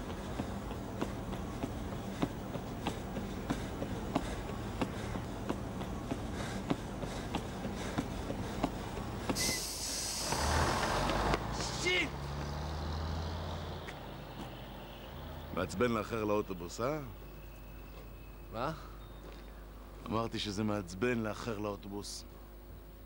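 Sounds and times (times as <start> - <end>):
running footsteps: 0.0 - 9.6
steady low hum: 0.0 - 10.4
bus engine drone: 0.0 - 20.0
loud air brake hiss: 9.4 - 10.7.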